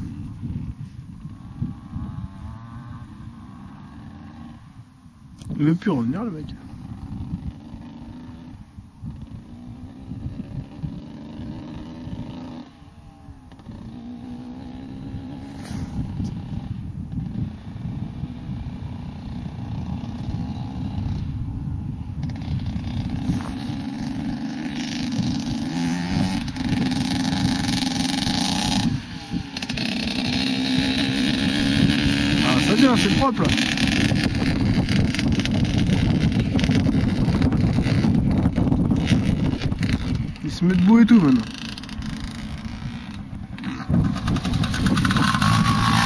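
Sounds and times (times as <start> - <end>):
motocross bike engine revving: 0.0 - 21.4, 22.2 - 46.0.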